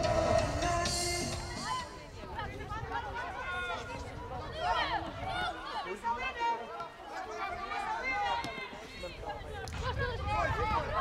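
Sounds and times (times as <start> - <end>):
voices calling and shouting: 0.0 - 11.0.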